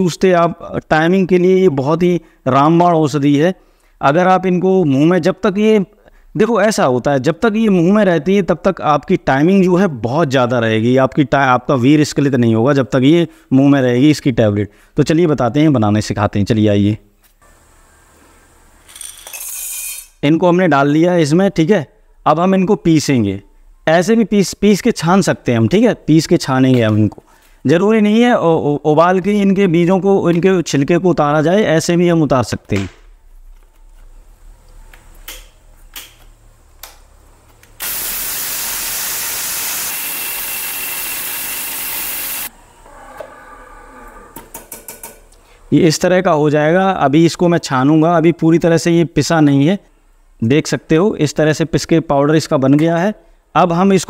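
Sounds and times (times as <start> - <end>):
faint room hiss: 0.0 - 39.9, 42.5 - 54.0
mixer grinder motor grinding: 37.8 - 42.5.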